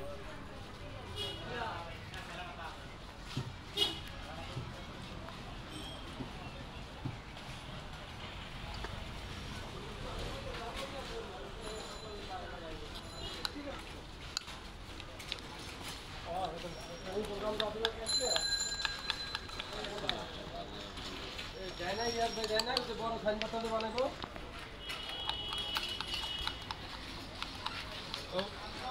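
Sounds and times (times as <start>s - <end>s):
voices chattering: 0.0s - 28.9s
bell-like metallic rings: 18.1s - 19.6s.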